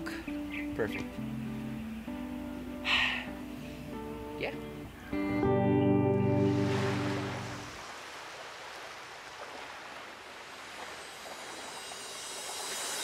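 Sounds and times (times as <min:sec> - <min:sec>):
background music: 0:00.0 - 0:07.7
surf washing: 0:06.1 - 0:13.0.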